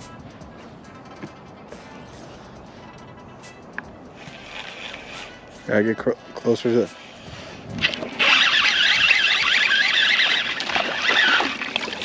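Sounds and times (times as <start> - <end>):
fishing reel whirring: 4.2 - 5.4, 6.9 - 12.0.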